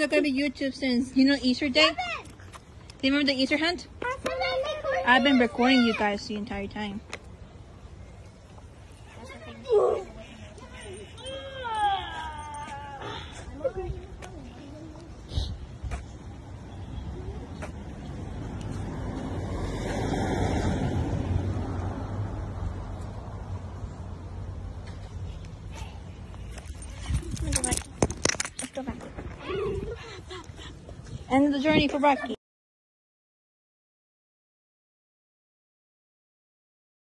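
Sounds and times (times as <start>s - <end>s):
dog leash and collar jingling: 9.1s - 14.2s, 26.4s - 29.0s.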